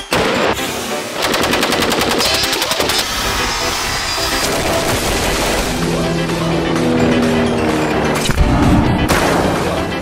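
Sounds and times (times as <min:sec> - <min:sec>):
automatic gunfire: 0:01.2 - 0:02.8.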